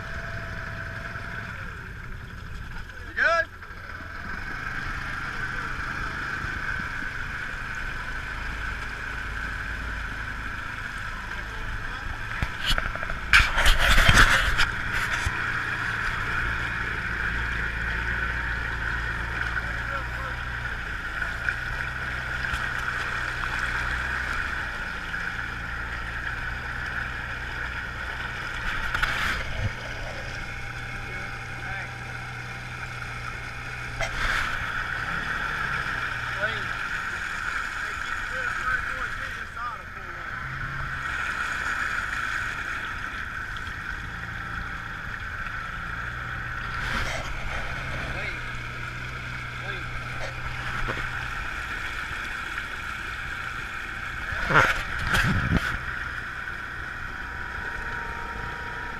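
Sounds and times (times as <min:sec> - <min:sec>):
utility vehicle engine running: 0:00.0 - 0:58.9
vehicle churning through mud and water: 0:00.0 - 0:58.9
wind noise on microphone: 0:54.9 - 0:55.9.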